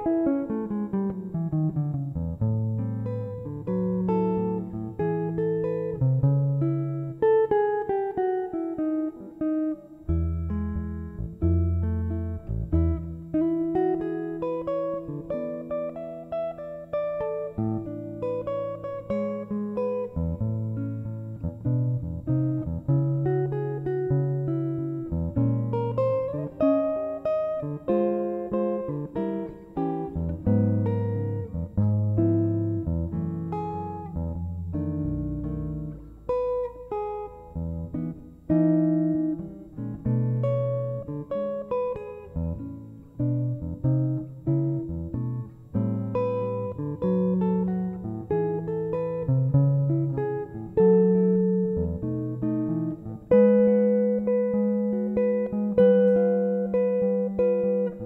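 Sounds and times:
jazz guitar ballad: 0.0 - 58.0.

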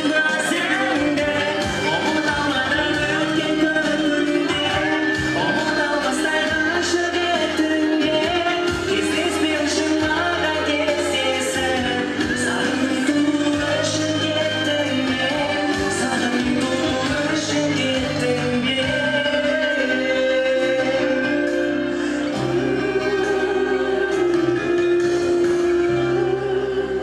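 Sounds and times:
amplified pop accompaniment: 0.0 - 27.0
man singing long notes: 0.0 - 27.0.

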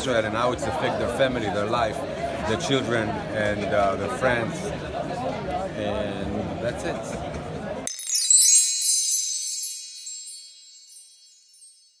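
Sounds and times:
high shimmering chime: 7.9 - 12.0.

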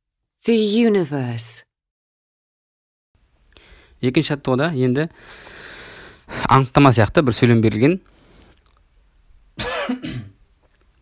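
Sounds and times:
person coughing: 9.6 - 10.4.

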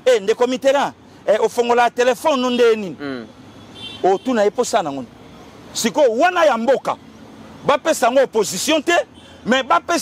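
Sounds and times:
man speaking emphatically: 0.0 - 10.0.

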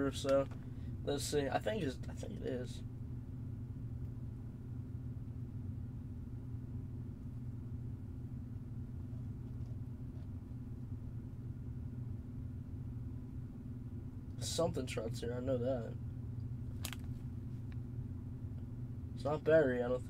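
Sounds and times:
low background hum: 0.0 - 20.0.

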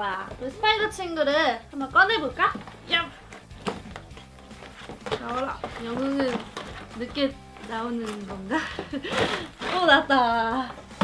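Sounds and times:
faint background music: 0.0 - 11.0
cardboard box being opened: 3.4 - 10.0.

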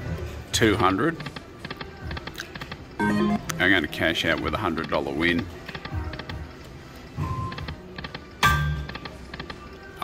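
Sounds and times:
electronic chime: 3.0 - 3.5.

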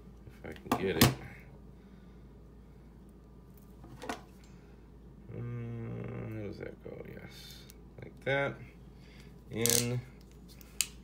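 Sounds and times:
person humming: 5.2 - 6.4.

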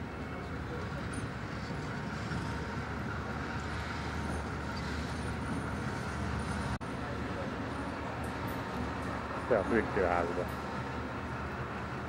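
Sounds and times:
train running on track: 0.0 - 12.0.

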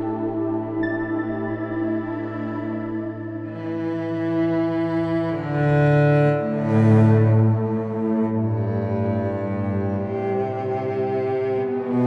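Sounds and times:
synthesizer held chords: 0.0 - 8.9.

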